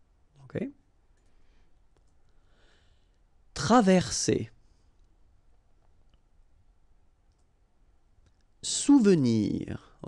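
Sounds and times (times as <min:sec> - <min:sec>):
computer mouse click: 0:07.3 - 0:07.5.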